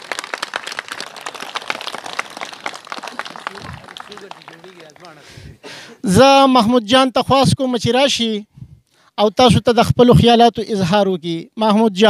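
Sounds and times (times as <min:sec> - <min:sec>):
crowd clapping: 0:00.0 - 0:05.3.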